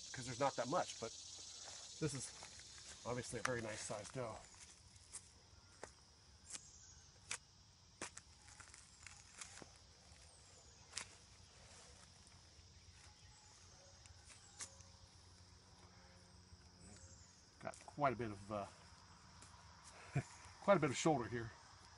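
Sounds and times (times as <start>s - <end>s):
high insect drone: 0.0s - 21.9s.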